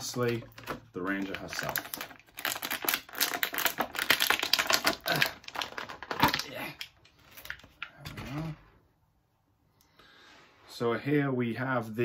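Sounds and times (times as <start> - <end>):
plastic bag crinkling: 0.0 - 8.0.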